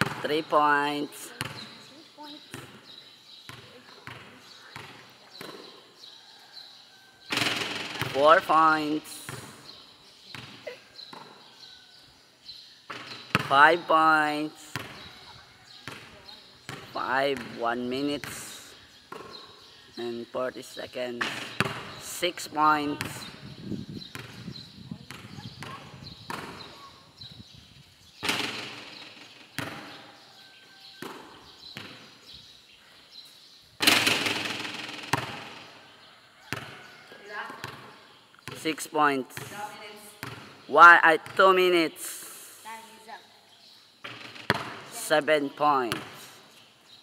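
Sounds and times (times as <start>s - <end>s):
basketball bouncing on concrete: 0.0s - 0.3s, 1.3s - 5.9s, 7.3s - 8.3s, 9.2s - 11.6s, 12.9s - 13.6s, 14.7s - 17.6s, 18.2s - 19.5s, 21.2s - 22.0s, 22.9s - 23.4s, 24.0s - 26.9s, 28.2s - 30.2s, 30.8s - 32.2s, 33.8s - 35.7s, 36.4s - 36.9s, 37.5s - 38.6s, 39.4s - 40.6s, 44.0s - 45.0s, 45.9s - 46.2s.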